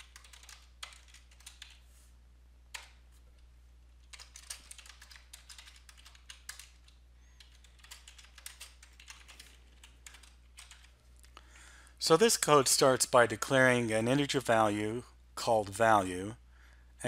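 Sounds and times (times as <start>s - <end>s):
faint keyboard typing: 0.0s - 2.0s, 2.7s - 11.4s.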